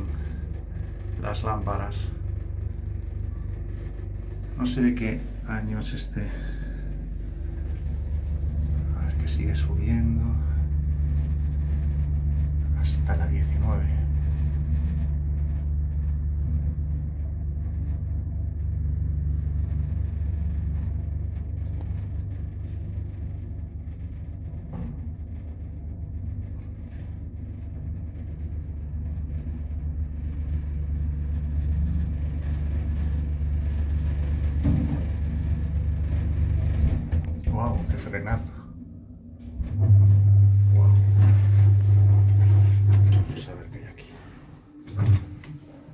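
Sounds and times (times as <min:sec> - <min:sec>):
elevator rumble and hum: 0:00.0 - 0:45.9.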